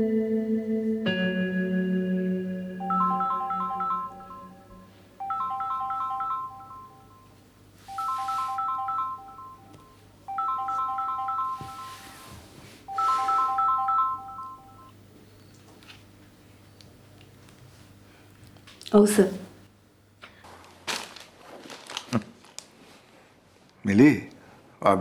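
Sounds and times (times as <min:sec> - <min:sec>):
phone ringtone beeps: 0:02.8 - 0:15.0.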